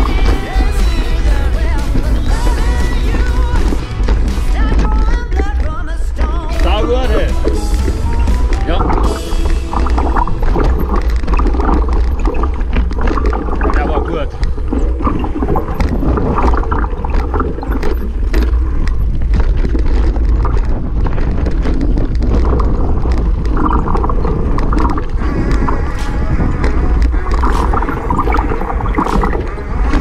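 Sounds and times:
bike chain and frame clicking: 0.0 - 30.0
tyres crunching on loose stones: 0.0 - 30.0
wind buffeting microphone: 0.0 - 30.0.

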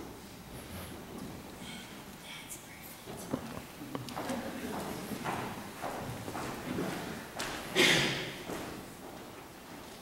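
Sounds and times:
footsteps on stage floor: 3.1 - 10.0.

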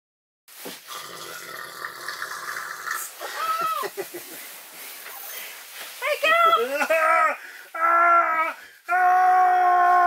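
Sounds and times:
sleeping bags rustling: 3.1 - 10.0.

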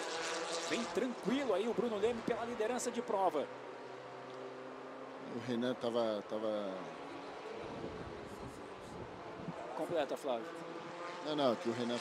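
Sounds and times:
distant race car engines droning: 0.0 - 12.0.

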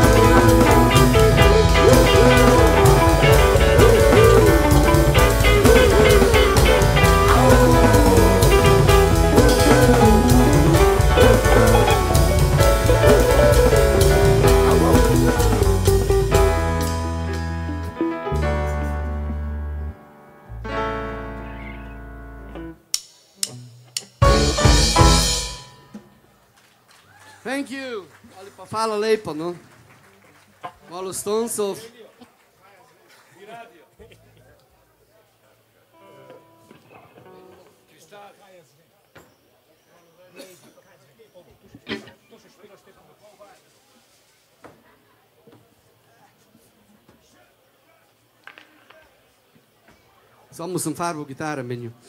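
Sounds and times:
faint voices: 0.0 - 16.4
drum and cymbal crash: 0.0 - 17.1, 22.9 - 26.0
rock band held chord: 0.0 - 26.2.

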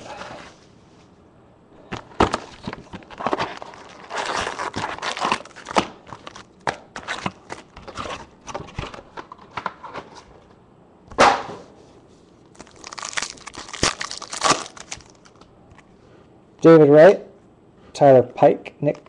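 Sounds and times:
packaging being torn and crinkled: 2.2 - 9.7, 12.5 - 15.5.

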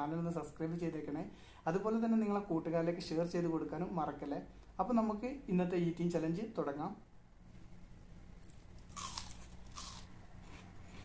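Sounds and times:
crunching bites into food: 8.4 - 11.0.

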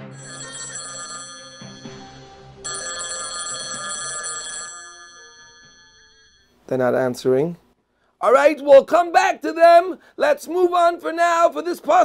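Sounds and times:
telephone ringing: 0.0 - 6.6.

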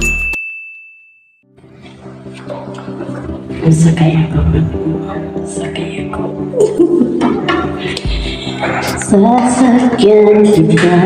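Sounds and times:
faint background music: 1.6 - 11.0.

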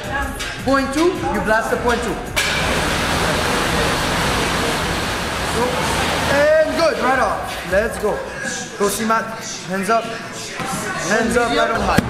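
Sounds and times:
air bike fan whooshing: 2.4 - 7.8.

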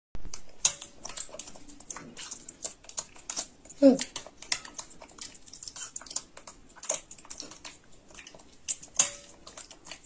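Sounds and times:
wet chewing mouth smacks: 0.3 - 10.0.

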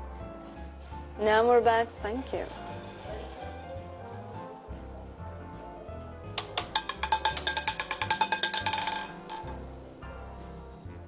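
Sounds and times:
roulette ball clattering: 2.0 - 4.5, 6.3 - 9.8.

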